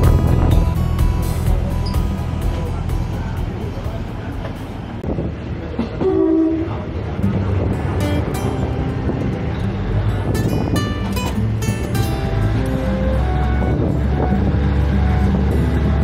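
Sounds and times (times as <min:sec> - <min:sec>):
background music: 0:00.0 - 0:04.4, 0:07.3 - 0:16.0
train rumbling: 0:00.0 - 0:16.0
train horn blast: 0:06.0 - 0:06.9, 0:12.6 - 0:16.0.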